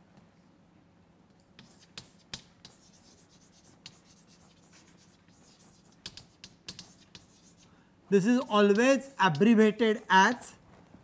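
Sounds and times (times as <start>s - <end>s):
chalk scratching on blackboard: 1.6s - 10.4s.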